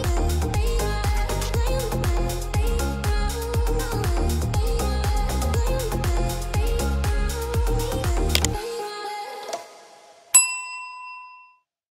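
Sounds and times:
bright ding: 10.4 - 11.6.

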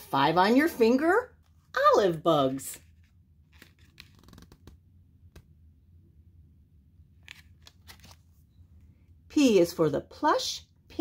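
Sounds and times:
low steady hum: 0.0 - 11.0
card pages clicking and rustling: 2.8 - 5.5, 7.2 - 8.3.

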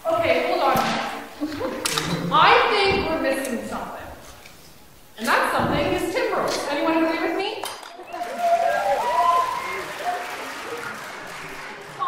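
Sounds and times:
audience applauding: 8.0 - 12.0.

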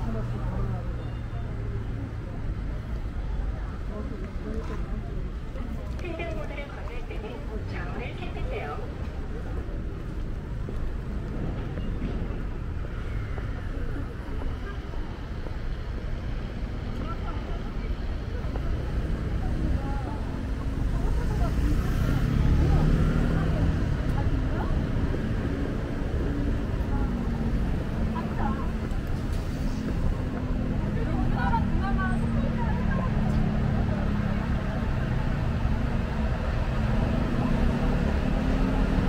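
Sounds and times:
people's voices: 0.0 - 39.0
traffic rumble: 0.0 - 39.0.

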